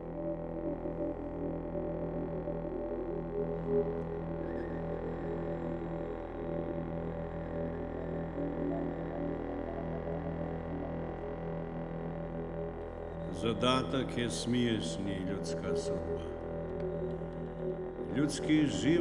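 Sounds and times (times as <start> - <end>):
droning chamber music with electronics: 0.0 - 19.0.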